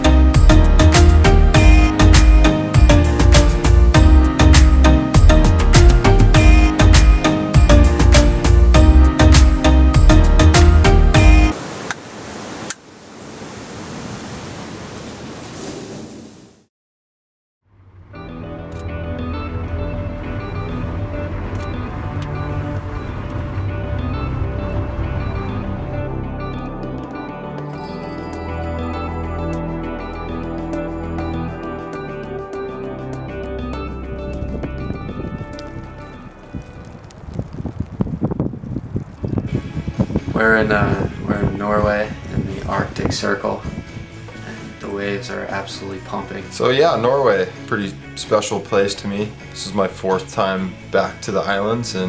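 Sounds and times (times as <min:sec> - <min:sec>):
irregular low thumps: 0:00.4 - 0:11.5, 0:33.4 - 0:41.6
surf on rocky shore: 0:11.5 - 0:16.6
sustained soundtrack tones: 0:18.1 - 0:27.0, 0:28.4 - 0:37.6.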